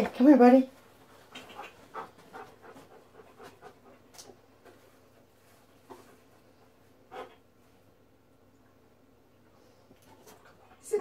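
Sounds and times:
dog panting: 0:01.0 - 0:07.6.

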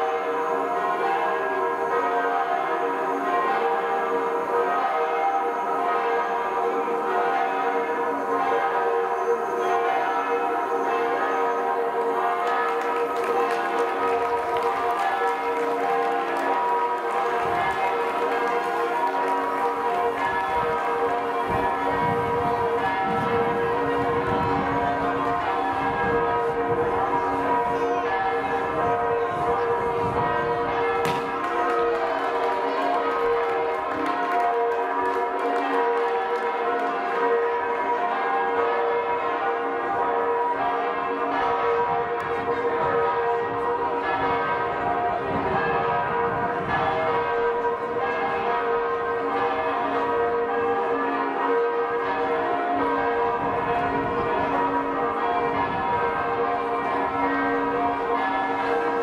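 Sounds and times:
church bells ringing: 0:00.0 - 0:59.0.

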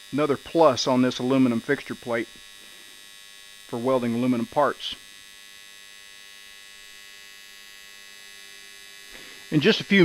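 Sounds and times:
welding arc electrical hum: 0:00.0 - 0:10.0.

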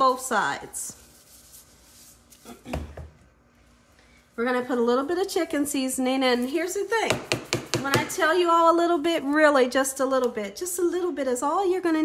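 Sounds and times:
person clearing throat: 0:02.4 - 0:03.1.

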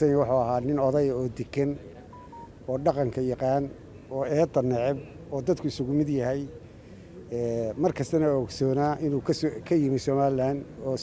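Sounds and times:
man speaking into a microphone: 0:00.0 - 0:06.5, 0:07.3 - 0:11.0
short electronic beeps: 0:02.1 - 0:02.5.

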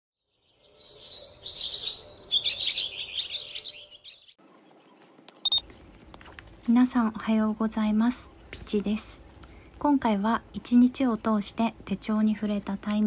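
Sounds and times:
small birds chirping: 0:00.3 - 0:05.9.

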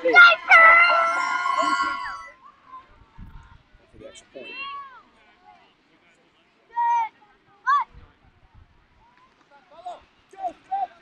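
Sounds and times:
high-pitched cheering yell: 0:00.0 - 0:02.4.

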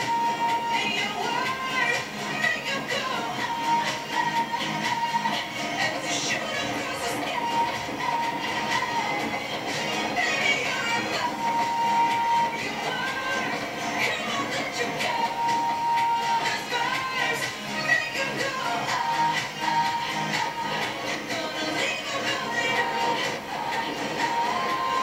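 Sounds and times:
whistle-like tone: 0:00.0 - 0:01.8, 0:10.7 - 0:13.5, 0:15.0 - 0:17.3
music playing: 0:00.0 - 0:25.0.

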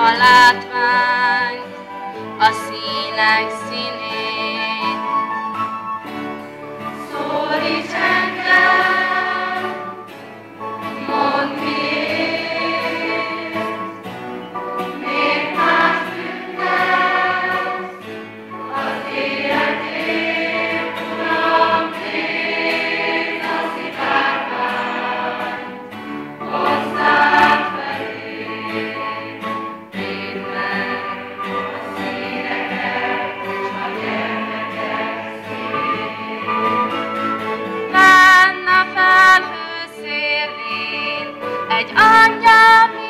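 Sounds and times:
children's choir singing: 0:00.0 - 0:05.7, 0:06.8 - 0:43.0.

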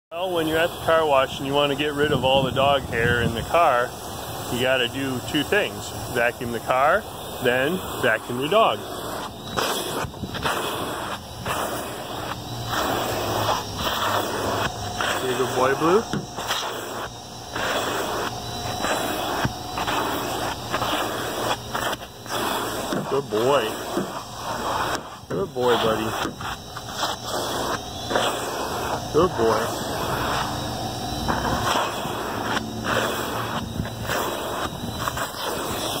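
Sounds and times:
vacuum suction rushing: 0:00.3 - 0:36.0.

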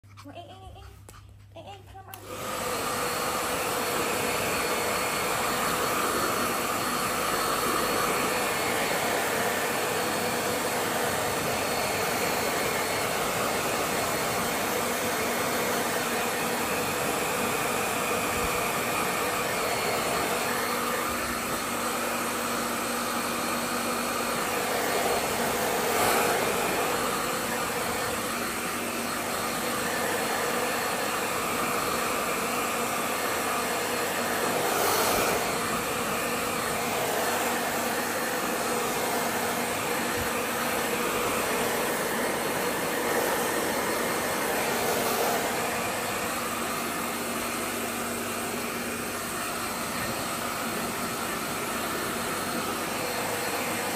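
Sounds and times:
hair dryer blowing: 0:01.9 - 0:53.9.

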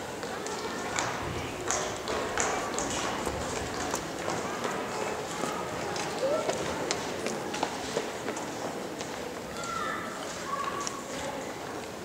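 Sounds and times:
audience chatter: 0:00.0 - 0:12.0.

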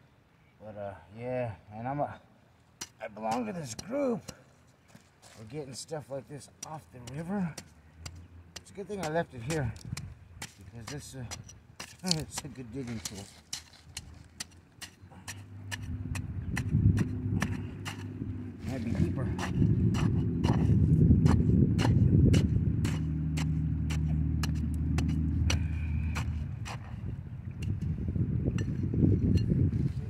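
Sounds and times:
stick scraping river gravel: 0:02.8 - 0:27.1
low engine rumble: 0:15.2 - 0:29.7.

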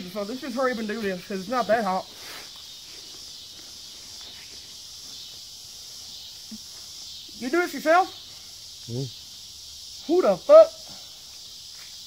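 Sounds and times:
insects buzzing: 0:00.0 - 0:12.0
faint small ticks: 0:11.3 - 0:12.0.

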